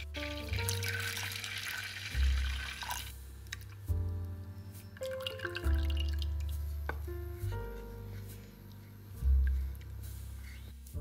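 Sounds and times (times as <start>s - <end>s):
cream pouring into saucepan: 0.2s - 3.1s
background music with bass notes: 2.2s - 11.0s.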